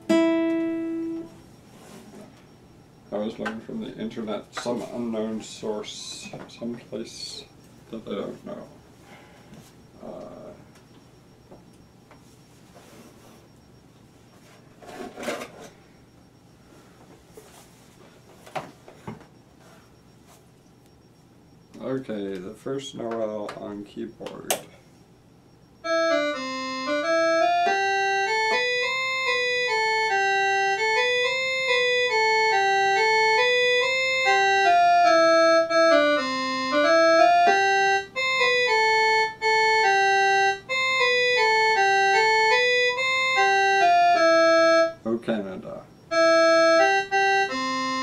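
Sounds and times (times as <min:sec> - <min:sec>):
electronic keyboard melody: 0:00.0 - 0:08.6, 0:25.7 - 0:48.0.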